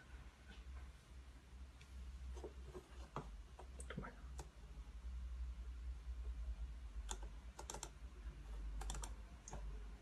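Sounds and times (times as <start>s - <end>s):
mouse and keyboard clicks: 7.0s - 8.0s, 8.8s - 9.7s.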